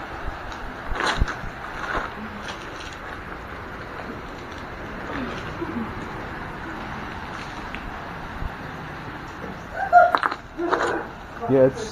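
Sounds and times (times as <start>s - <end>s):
steady wash of noise: 0.0s - 11.9s
footsteps on beach cobbles: 0.5s - 6.4s
stones knocking together: 10.1s - 11.0s.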